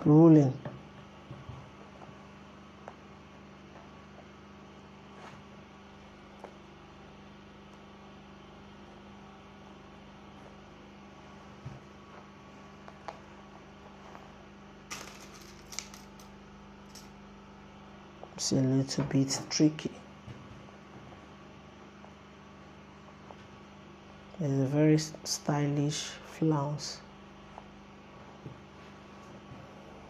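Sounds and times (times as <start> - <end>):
electrical hum: 0.0 - 30.0.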